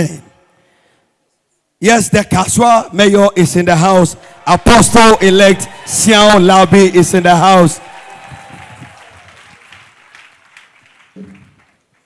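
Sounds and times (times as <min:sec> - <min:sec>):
congregation applauding: 0:03.6 - 0:12.0.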